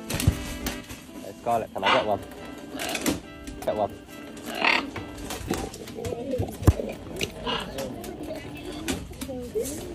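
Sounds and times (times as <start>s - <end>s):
macaw warbling and mumbling: 6.8s - 8.7s.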